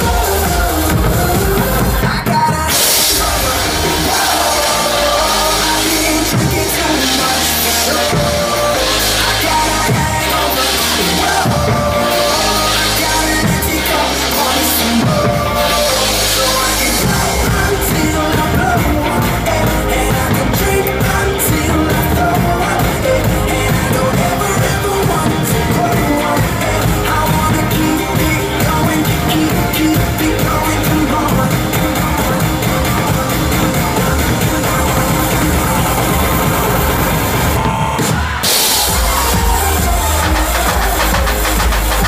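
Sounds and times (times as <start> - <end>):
dance-pop track with vocals: 0.0 - 42.0
heavy bass: 0.0 - 42.0
live drum kit: 0.0 - 42.0
burst of hiss: 2.7 - 15.0, 38.2 - 42.0.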